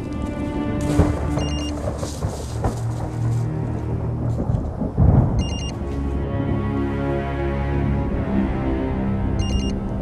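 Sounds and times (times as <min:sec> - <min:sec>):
deep low rumble: 0:00.0 - 0:07.0
high electronic beeps: 0:05.4 - 0:05.7, 0:09.4 - 0:09.8.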